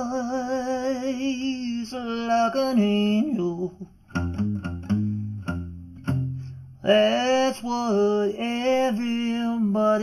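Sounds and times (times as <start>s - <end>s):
person singing blues: 0.0s - 10.0s
plucked guitar notes: 4.0s - 6.8s.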